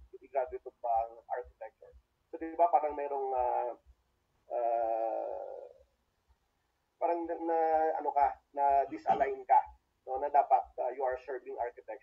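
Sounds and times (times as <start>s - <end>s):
man saying uh: 0.0s - 3.8s, 4.5s - 5.8s, 7.0s - 12.0s.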